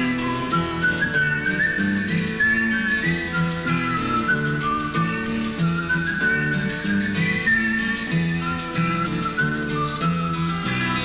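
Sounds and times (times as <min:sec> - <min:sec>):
acoustic guitar: 0:00.0 - 0:11.0.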